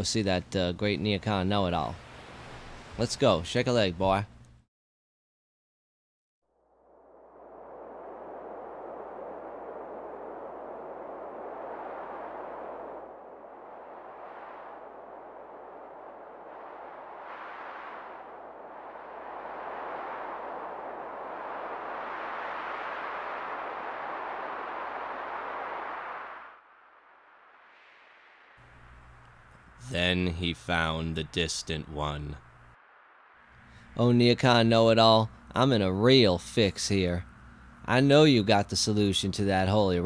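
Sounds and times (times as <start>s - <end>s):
surf rushing: 1.9s - 3.0s, 7.4s - 28.8s.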